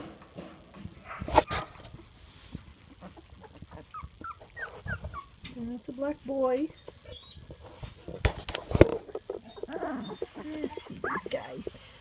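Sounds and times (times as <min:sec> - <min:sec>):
puppies whimpering and squeaking: 0:02.8 - 0:05.5, 0:06.4 - 0:12.0.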